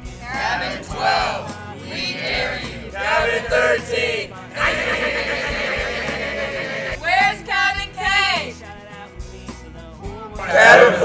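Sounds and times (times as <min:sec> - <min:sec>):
boys yelling together: 0:10.4 - 0:11.0.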